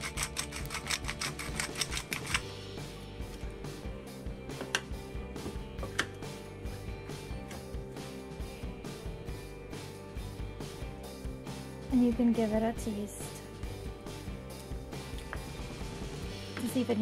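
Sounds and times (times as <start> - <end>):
pepper mill grinding clicks: 0.0 - 2.4
soft background music: 0.0 - 17.0.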